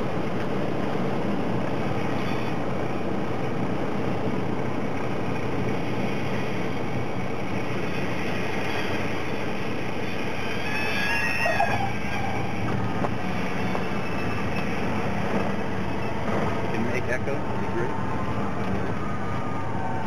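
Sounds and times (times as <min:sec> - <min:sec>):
high squeal: 0:02.0 - 0:03.1, 0:06.0 - 0:20.0.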